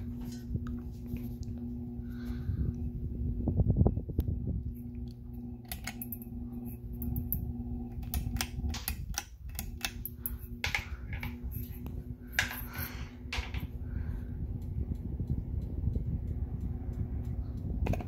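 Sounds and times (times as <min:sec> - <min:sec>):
ceiling fan motor humming: 0:00.0 - 0:18.0
sharp clicks and ticks: 0:14.5 - 0:18.0.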